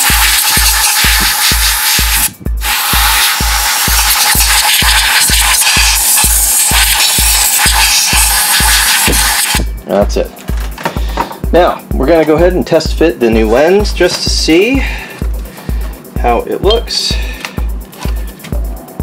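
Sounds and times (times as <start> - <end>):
compressed air hissing: 0.0 - 9.7, 14.6 - 16.2, 17.0 - 18.6
background music with steady beat: 0.0 - 19.0.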